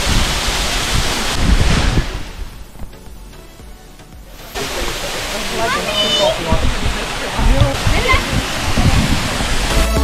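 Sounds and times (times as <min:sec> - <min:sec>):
waterfall rushing: 0:00.0 - 0:10.0
faint voices: 0:04.3 - 0:09.5
music with a beat: 0:09.7 - 0:10.0.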